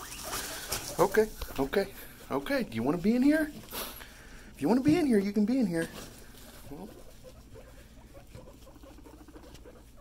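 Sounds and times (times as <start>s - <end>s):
guinea pigs calling: 0.0s - 10.0s
rustling in wood shavings: 0.0s - 10.0s.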